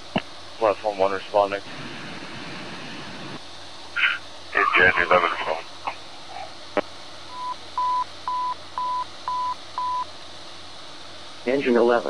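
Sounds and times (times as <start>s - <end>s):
short single-pitch beeps: 7.4s - 10.0s.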